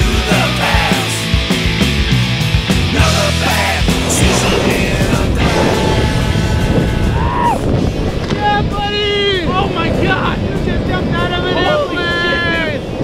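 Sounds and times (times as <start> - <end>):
music: 0.0 - 8.3
wind buffeting microphone: 3.9 - 13.0.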